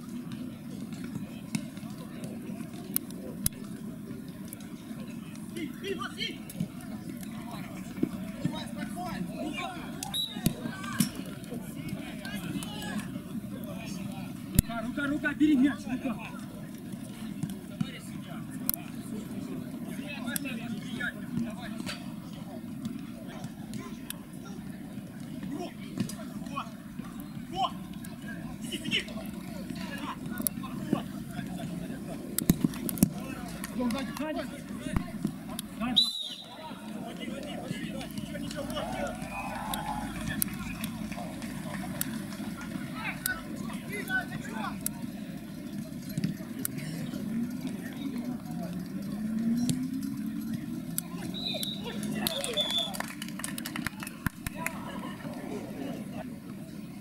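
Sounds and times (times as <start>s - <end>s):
players shouting: 28.6s - 45.2s, 50.8s - 53.0s.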